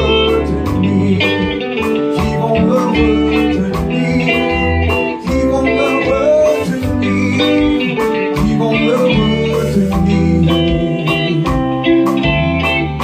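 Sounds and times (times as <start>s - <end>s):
bass guitar: 0.0s - 13.0s
drum-kit beat: 0.0s - 13.0s
electric guitar: 0.0s - 13.0s
keyboard: 0.0s - 13.0s.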